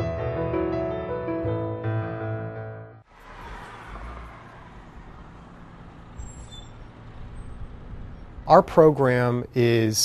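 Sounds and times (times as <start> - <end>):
faint high squeal: 6.1 - 8.3.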